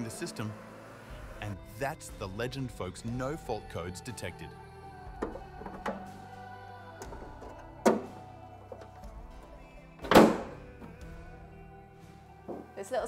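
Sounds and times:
background music: 0:00.0 - 0:13.0
car bonnet slamming shut: 0:10.0 - 0:10.6.

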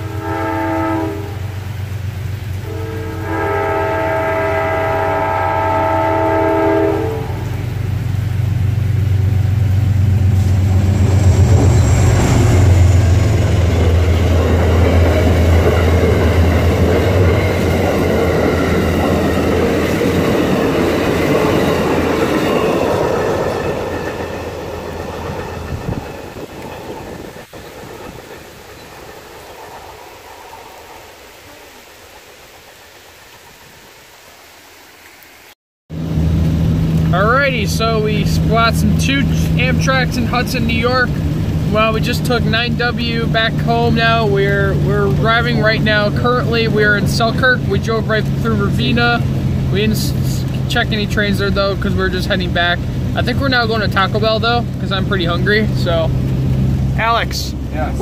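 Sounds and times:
train horn chord: 0:00.0 - 0:01.9, 0:02.6 - 0:07.8
train cars rumbling past: 0:00.0 - 0:32.9, 0:35.9 - 0:58.0
diesel engine drone: 0:07.4 - 0:22.3, 0:35.9 - 0:58.0.

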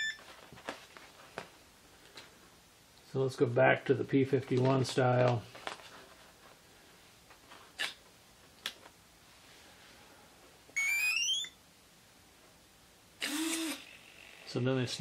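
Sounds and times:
rising electronic beeps: 0:10.8 - 0:11.6
servo whir: 0:13.2 - 0:14.4.

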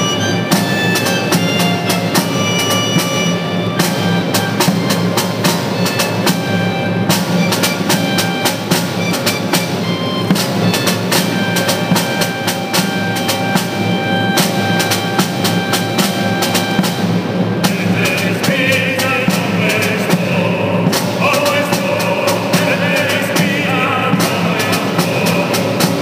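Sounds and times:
choir holding chords: 0:00.0 - 0:26.0
rapid snare drum strokes: 0:00.0 - 0:26.0.

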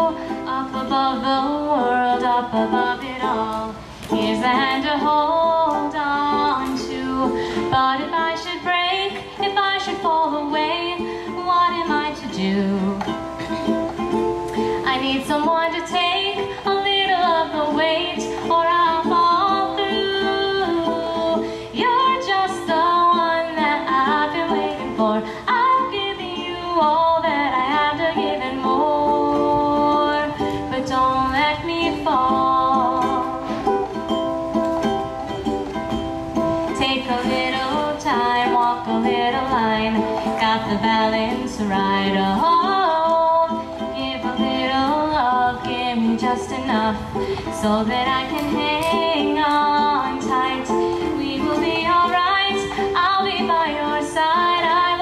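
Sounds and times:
woman singing: 0:00.0 - 0:34.2, 0:36.4 - 0:55.0
ukulele: 0:00.0 - 0:55.0.

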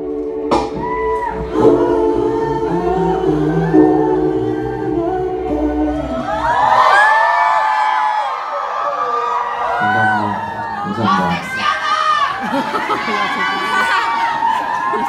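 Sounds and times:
audience screaming and cheering: 0:00.0 - 0:03.0, 0:05.6 - 0:15.0
live r and b song: 0:00.0 - 0:07.7.

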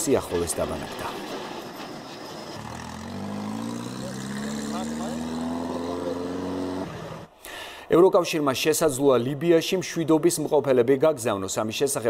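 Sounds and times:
truck engine pulling away: 0:01.2 - 0:07.4.

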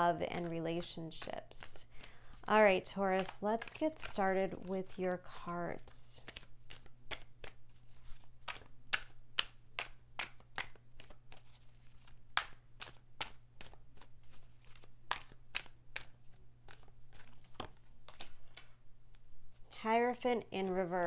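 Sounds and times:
cards being shuffled: 0:00.0 - 0:21.0.

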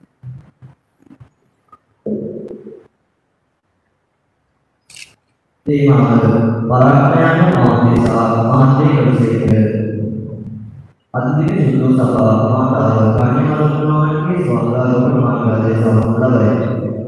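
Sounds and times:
man chanting over sound system: 0:05.7 - 0:10.6, 0:11.2 - 0:17.0.

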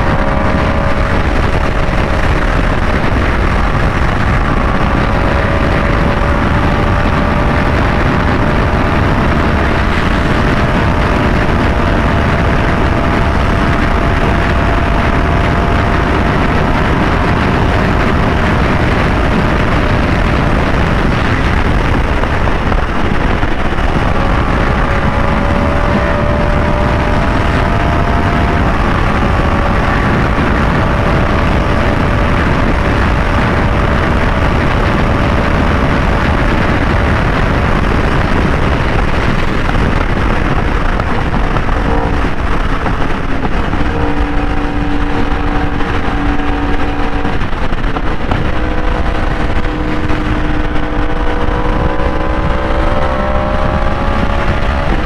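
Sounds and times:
motorcycle engine cruising: 0:00.0 - 0:55.0
wind noise on microphone: 0:00.0 - 0:55.0.

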